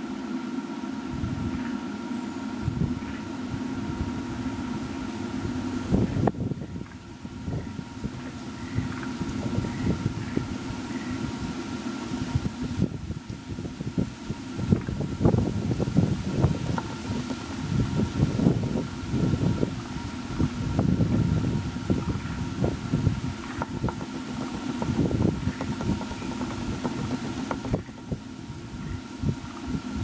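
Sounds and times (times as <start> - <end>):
faint high whine: 0.0 - 30.0
wind buffeting microphone: 1.1 - 1.7, 2.5 - 30.0.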